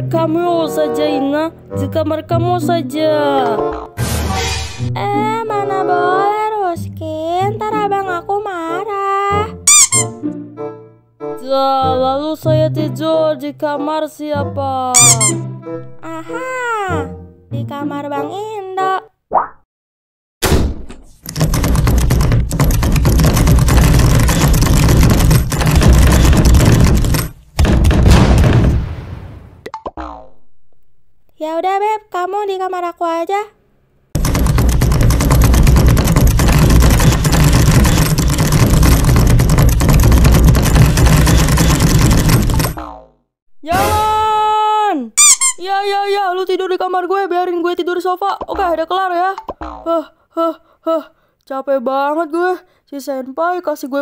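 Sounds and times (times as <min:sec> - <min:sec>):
short high squeal: 0:09.7 - 0:10.2, 0:15.0 - 0:15.4, 0:45.2 - 0:45.7
cartoon voice shouting: 0:14.8 - 0:15.4, 0:16.0 - 0:17.1, 0:43.6 - 0:46.5
high-pitched voice chattering: 0:15.0 - 0:15.4
door slamming: 0:20.4 - 0:29.5.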